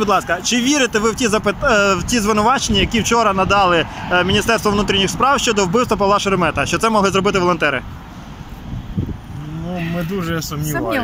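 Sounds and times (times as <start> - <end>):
traffic and street noise: 0.0 - 11.0.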